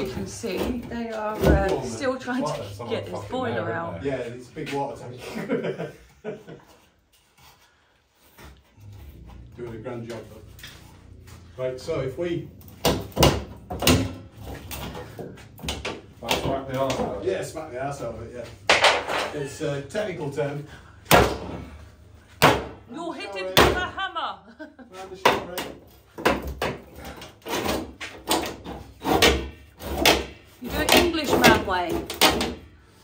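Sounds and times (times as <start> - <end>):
water heater tank knocking and rattling: 12.8 - 14.9.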